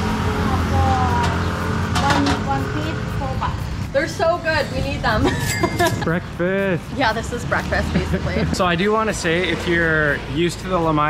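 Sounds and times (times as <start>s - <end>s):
people talking: 0.0s - 11.0s
vehicle engine humming: 0.0s - 11.0s.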